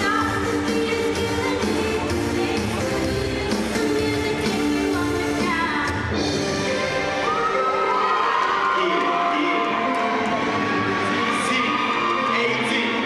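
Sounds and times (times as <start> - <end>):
audience cheering and whooping: 7.0 - 13.0.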